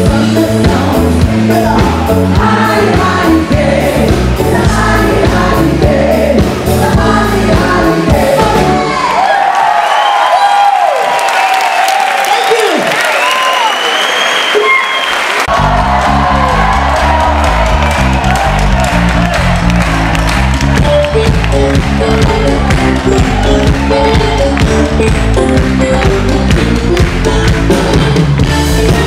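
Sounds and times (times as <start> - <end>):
disco-pop band with vocals: 0.0 - 9.4, 20.8 - 29.0.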